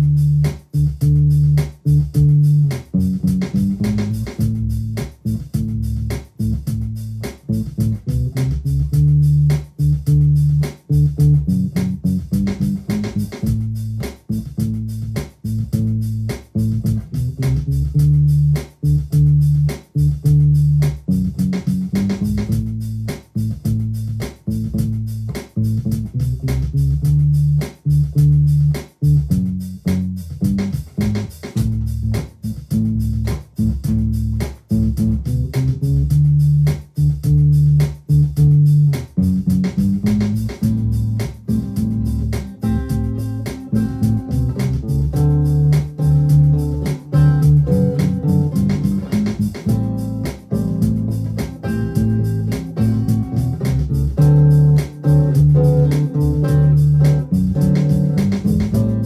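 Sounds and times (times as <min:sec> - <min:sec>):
electric guitar bass line: 0:00.0 - 0:59.0.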